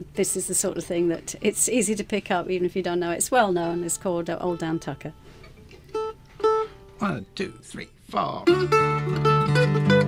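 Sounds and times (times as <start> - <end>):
plucked acoustic string notes: 3.5 - 10.0.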